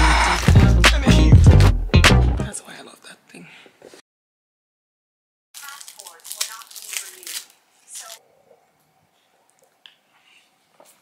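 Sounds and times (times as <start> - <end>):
plastic straw wrapper crinkling: 0.0 - 0.6, 5.6 - 8.2.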